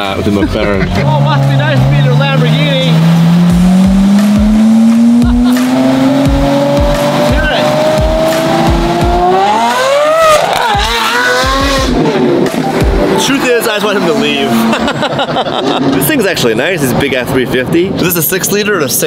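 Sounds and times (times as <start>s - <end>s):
car engine accelerating: 0.0s - 17.4s
music beat: 0.1s - 15.4s.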